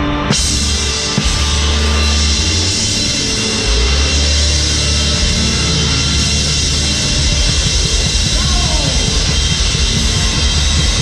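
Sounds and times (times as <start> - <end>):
drums and cymbals: 0.0 - 11.0
low bass notes: 0.0 - 11.0
rock band playing: 0.0 - 11.0.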